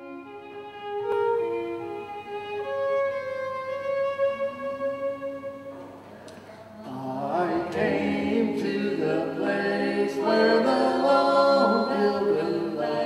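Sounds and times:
fiddle playing slow melody: 0:00.0 - 0:06.2.

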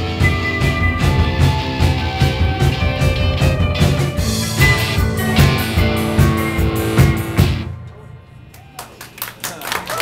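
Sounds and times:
drum hits: 0:00.0 - 0:08.0
rock band playing: 0:00.0 - 0:08.9.

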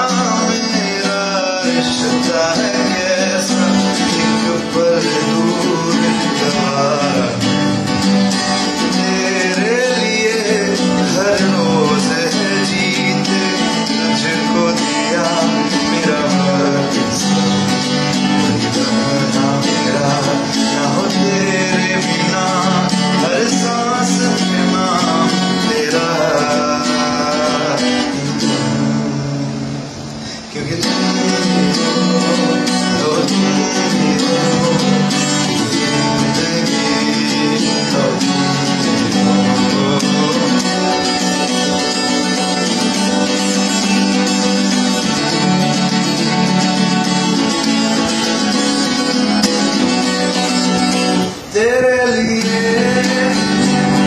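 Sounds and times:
man singing: 0:00.0 - 0:29.1, 0:30.3 - 0:54.0
strummed guitar: 0:00.0 - 0:54.0.

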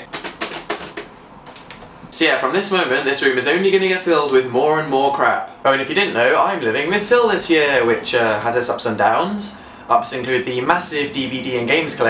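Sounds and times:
laptop keyboard typing: 0:00.0 - 0:01.8.

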